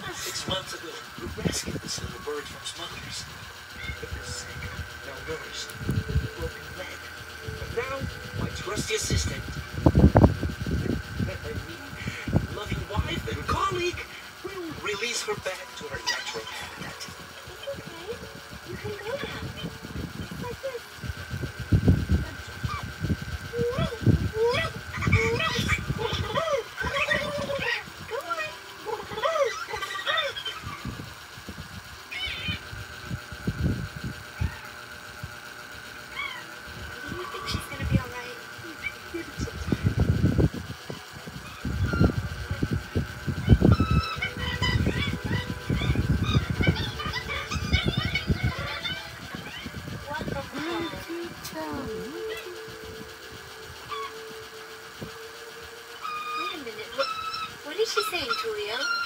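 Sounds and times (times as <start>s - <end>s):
cartoon bird squawks and chirps: 32.1s - 32.7s, 43.4s - 49.8s, 56.0s - 59.0s.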